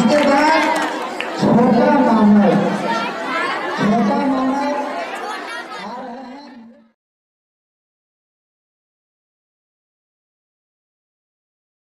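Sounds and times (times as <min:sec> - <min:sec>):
schoolchildren chattering: 0:00.0 - 0:07.0.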